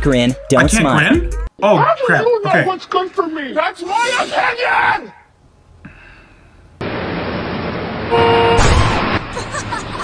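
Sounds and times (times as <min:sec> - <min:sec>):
street traffic rush: 0:05.3 - 0:10.0
car horn: 0:08.1 - 0:08.9.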